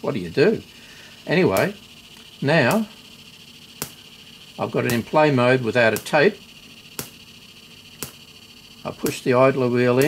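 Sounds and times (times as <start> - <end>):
faint steady hiss: 0.0 - 10.0
sharp static ticks: 0.0 - 10.0.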